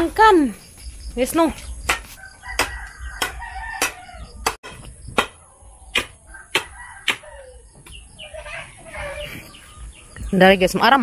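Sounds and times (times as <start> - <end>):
chickens calling: 1.7 - 11.0
rooster crowing: 2.1 - 4.5, 5.6 - 7.8.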